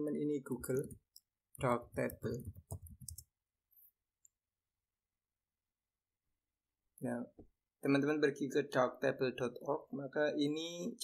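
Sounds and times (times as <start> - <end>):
keyboard clicks: 0.5 - 3.3.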